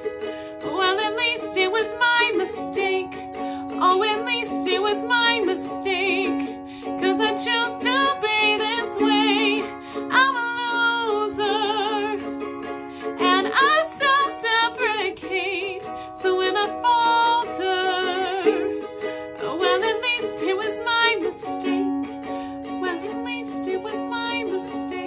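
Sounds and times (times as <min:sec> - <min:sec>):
strummed ukulele: 0:00.0 - 0:25.0
woman singing with vibrato: 0:00.0 - 0:25.0.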